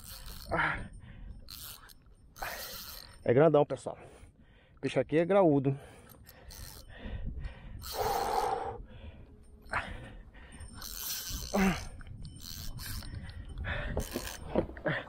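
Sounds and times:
man gasping breaths: 5.8 - 12.1, 13.1 - 15.0.

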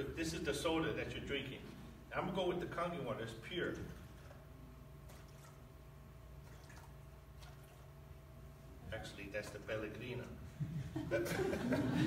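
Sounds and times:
low room hum: 0.0 - 12.0
water dripping into a cup: 6.4 - 8.0.

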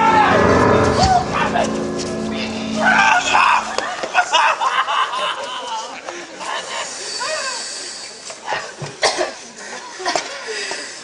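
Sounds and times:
low held note: 0.0 - 4.4
actors' voices: 0.0 - 7.6.

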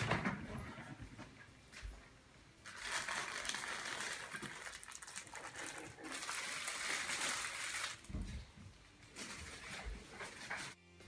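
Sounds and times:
plastic packaging crinkling: 2.6 - 8.2.

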